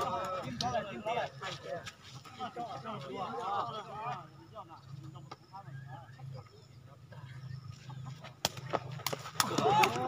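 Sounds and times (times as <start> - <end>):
ball being kicked: 8.4 - 10.0
people shouting and whooping: 9.4 - 10.0.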